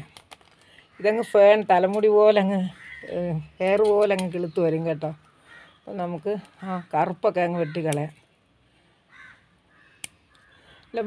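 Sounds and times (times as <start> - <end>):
crow cawing: 2.7 - 3.2, 5.2 - 5.8, 7.6 - 8.1, 9.1 - 10.9.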